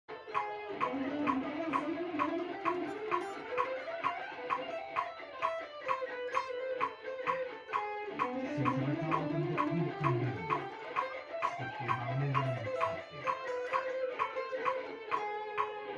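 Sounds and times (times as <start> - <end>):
electric guitar picking: 0.1 - 15.9
metronome clicking: 0.1 - 15.9.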